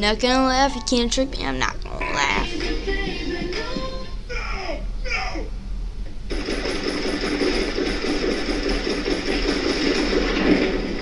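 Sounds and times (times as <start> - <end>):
fast regular ticking: 6.3 - 11.0
machine rattling: 6.3 - 11.0.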